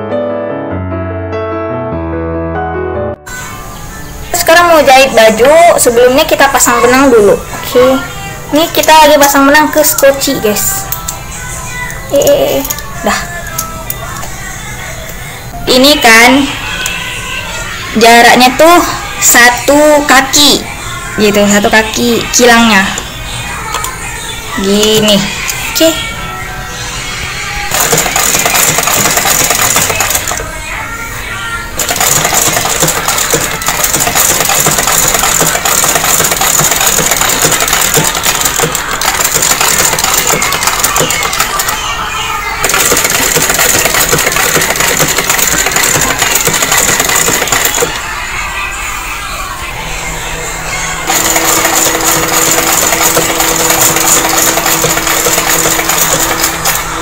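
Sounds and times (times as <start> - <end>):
sewing machine stitching: 27.7 - 30.4, 31.8 - 41.8, 42.6 - 48.0, 51.1 - 57.0.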